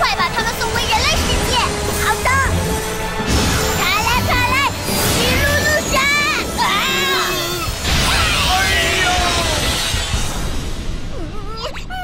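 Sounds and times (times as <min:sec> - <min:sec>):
background music: 0:00.0 - 0:12.0
cartoon magic blast: 0:03.3 - 0:11.1.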